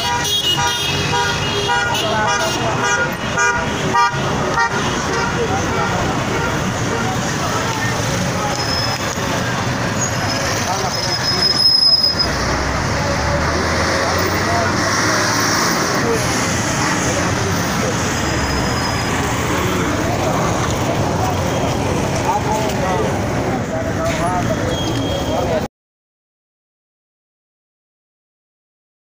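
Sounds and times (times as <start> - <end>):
motorcycle engines: 0.0 - 25.7
people's voices: 0.0 - 25.7
heavy truck engine drone: 2.0 - 24.7.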